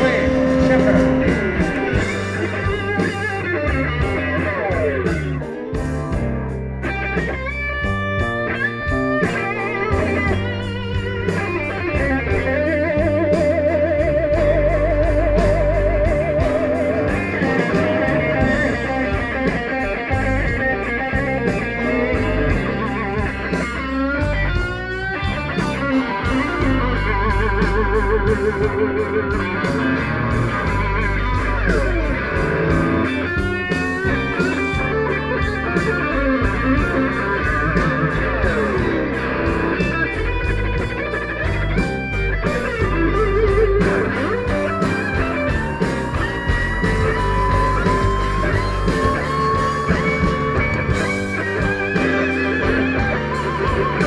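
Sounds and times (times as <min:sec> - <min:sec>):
bass: 0:00.0 - 0:54.0
drums: 0:00.0 - 0:54.0
electric guitar solo: 0:00.0 - 0:54.0.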